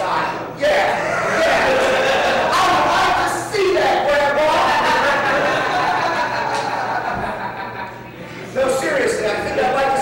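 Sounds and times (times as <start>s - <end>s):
low room noise: 0.0s - 10.0s
man's drawn-out vocal sound: 0.6s - 3.2s.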